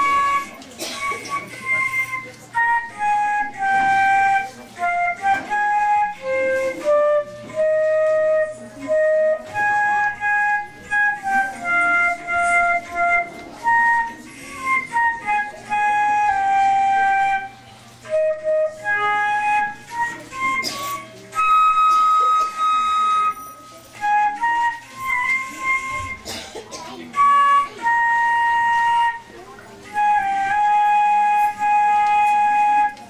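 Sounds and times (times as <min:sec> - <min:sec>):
solo flute playing slow melody: 0:00.0 - 0:26.3, 0:27.1 - 0:33.0.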